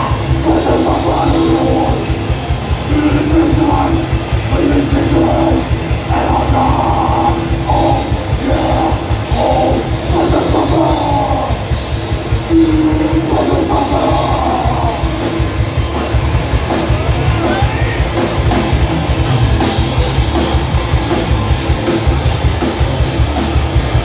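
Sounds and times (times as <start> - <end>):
death metal band playing live: 0.0 - 24.0.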